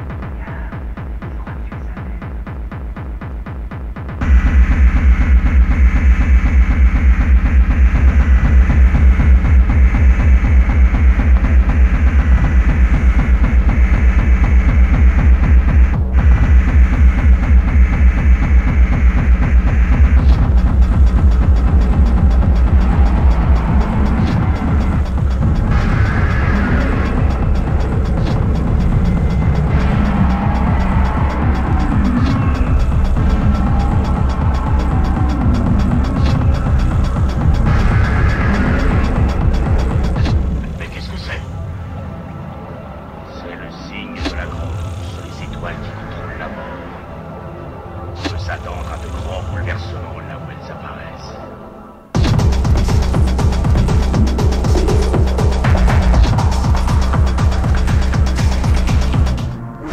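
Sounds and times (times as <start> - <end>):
heavy kick drum: 0.0 - 41.3, 52.2 - 59.6
dark synth: 0.0 - 59.9.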